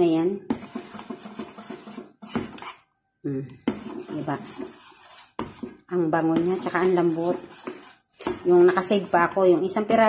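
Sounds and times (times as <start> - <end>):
metal spoon scraping a saucepan: 0.0 - 2.9, 3.6 - 10.0.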